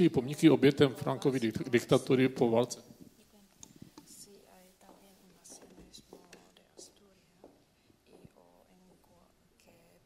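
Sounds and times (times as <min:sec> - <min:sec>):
woman whispering: 0:03.2 - 0:10.0.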